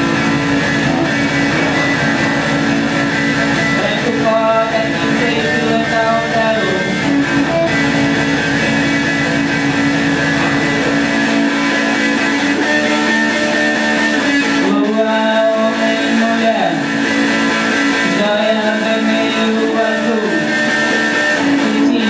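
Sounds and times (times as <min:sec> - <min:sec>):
droning guitar notes: 0:00.0 - 0:22.0.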